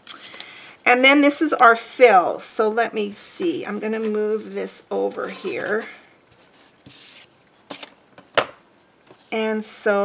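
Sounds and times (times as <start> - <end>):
card sliding across table: 5.2 - 7.9.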